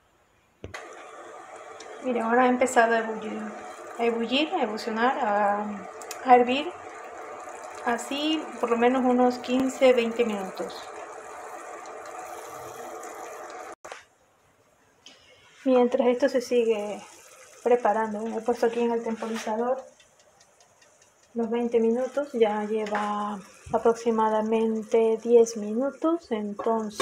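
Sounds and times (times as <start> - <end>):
syrup boiling in a pot: 0.8 - 13.8, 15.9 - 27.0.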